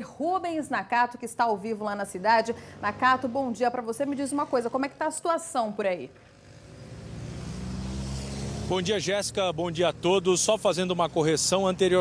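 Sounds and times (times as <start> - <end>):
vehicle engine hum approaching: 6.1 - 12.0.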